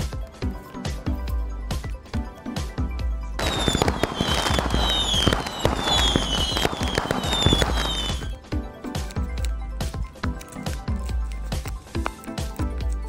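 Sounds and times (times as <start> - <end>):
background music: 0.0 - 13.0
fireworks crackling and thudding: 3.4 - 8.4
high falling whistles: 3.4 - 8.4.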